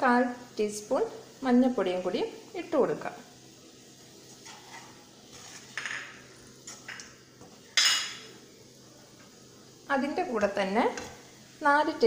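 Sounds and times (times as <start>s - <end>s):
spatula scraping a pan: 4.3s - 7.0s.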